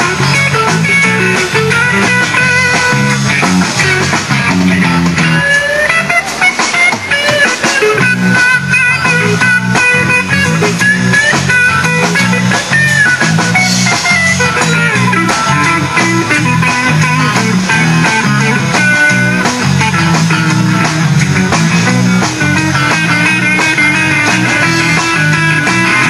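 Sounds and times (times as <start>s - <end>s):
bass guitar: 0.0s - 26.0s
drums: 0.0s - 26.0s
electric guitar bending notes: 0.0s - 26.0s.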